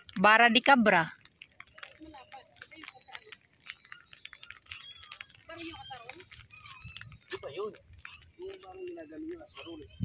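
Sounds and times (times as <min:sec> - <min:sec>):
faint voices: 0:01.6 - 0:10.0.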